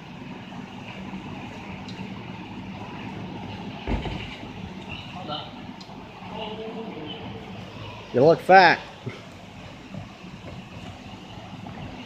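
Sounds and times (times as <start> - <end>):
low background hum: 0.0 - 12.0
body thudding onto mat: 3.8 - 4.5.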